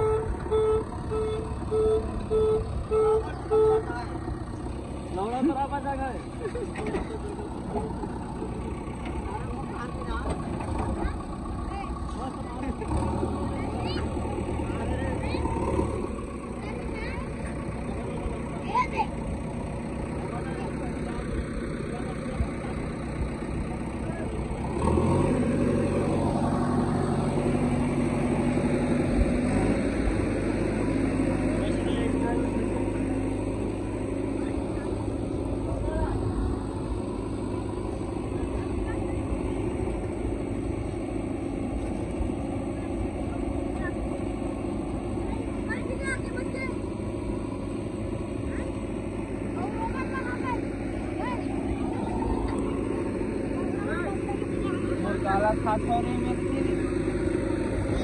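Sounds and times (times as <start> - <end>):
diesel engine running: 0.0 - 58.0
backhoe digging mud: 23.4 - 31.8.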